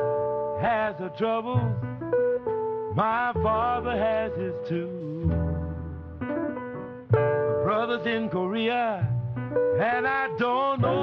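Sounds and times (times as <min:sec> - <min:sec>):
bent sliding lead notes: 0:00.0 - 0:11.0
slow blues instrumental: 0:00.0 - 0:11.0
steady bass: 0:00.0 - 0:11.0.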